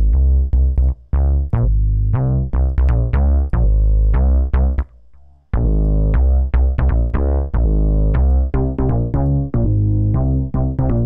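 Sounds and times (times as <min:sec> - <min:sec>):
synth bass line: 0:05.6 - 0:11.0.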